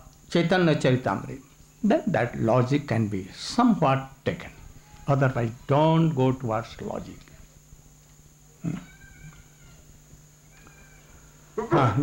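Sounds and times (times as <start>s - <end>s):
steady low hum: 0.0s - 12.0s
man murmuring hmm: 8.6s - 8.9s, 11.6s - 12.0s.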